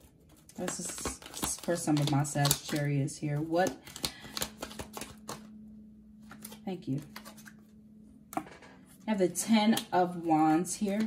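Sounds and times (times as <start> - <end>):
faint steady hum: 0.0 - 11.0
cards sliding: 3.8 - 5.5
cards tapping on table: 3.9 - 5.5.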